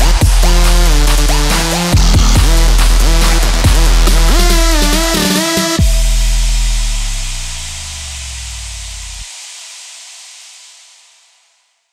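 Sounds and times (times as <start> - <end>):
sub-bass note with downward sweep: 0.0 - 9.3.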